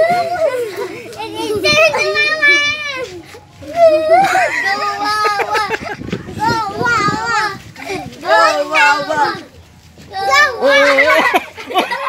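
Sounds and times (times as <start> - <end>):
boys laughing and chattering: 0.0 - 12.0.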